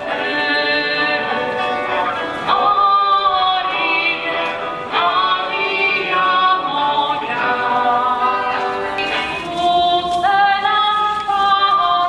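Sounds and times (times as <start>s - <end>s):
voices singing a slow hymn: 0.0s - 12.0s.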